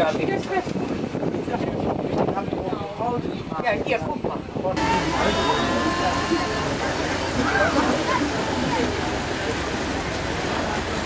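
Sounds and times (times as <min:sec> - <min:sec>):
wind noise: 0:00.0 - 0:07.6
faint voices: 0:04.6 - 0:11.0
water rushing: 0:04.7 - 0:11.0.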